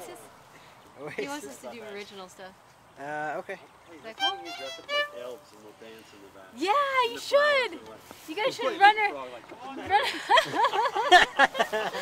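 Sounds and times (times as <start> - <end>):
fiddle notes: 4.1 - 5.6.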